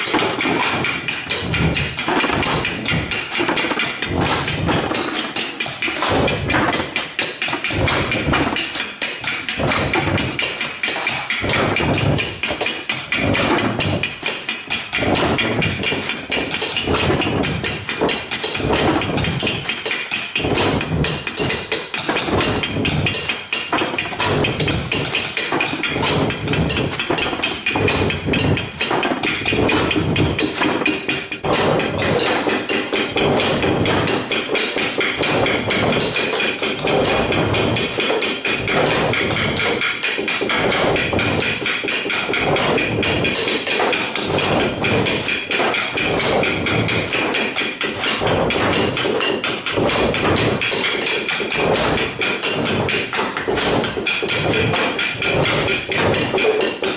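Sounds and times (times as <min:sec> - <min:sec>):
hand drums ensemble playing: 0:00.0 - 0:56.9.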